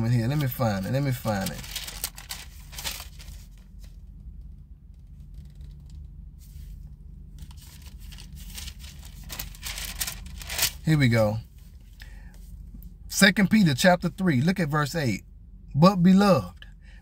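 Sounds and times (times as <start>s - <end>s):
steady low hum: 0.0s - 17.0s
paper pages rustling: 0.2s - 4.0s, 5.0s - 10.8s.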